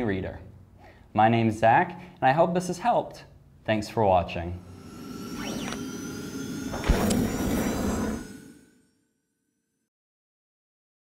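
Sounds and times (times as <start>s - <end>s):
bright swish: 4.6s - 9.0s
whoosh: 4.6s - 9.0s.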